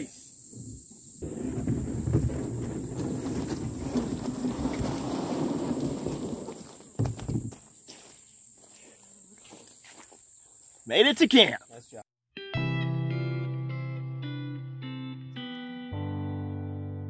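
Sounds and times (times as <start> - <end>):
plastic hull scraping over gravel: 0.5 - 7.6.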